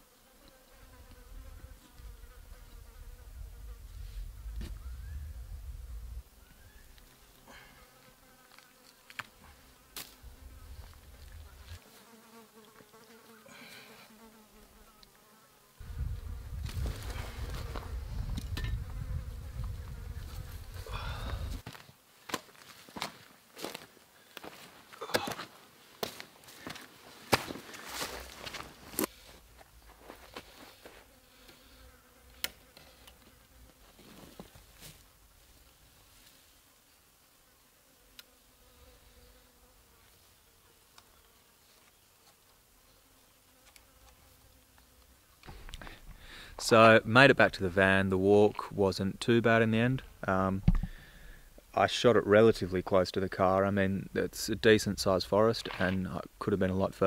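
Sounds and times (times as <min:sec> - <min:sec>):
flies buzzing: 0:00.0 - 0:21.6, 0:28.0 - 0:35.8, 0:36.5 - 0:46.6.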